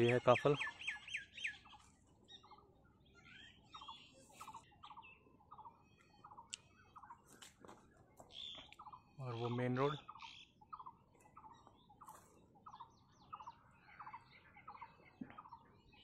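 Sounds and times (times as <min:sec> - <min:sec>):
high bird twittering: 0:00.0 - 0:07.4, 0:08.2 - 0:16.0
bird chirps: 0:00.0 - 0:16.0.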